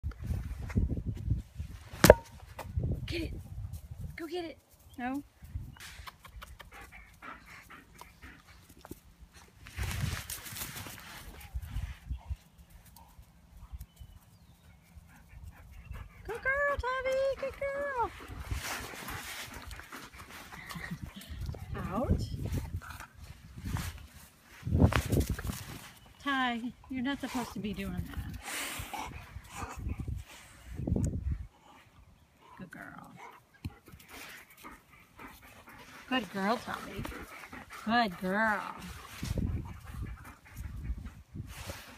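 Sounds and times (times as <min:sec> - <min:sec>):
dog panting: 0:06.1 - 0:09.3, 0:14.6 - 0:16.5, 0:26.8 - 0:30.8, 0:31.4 - 0:41.9.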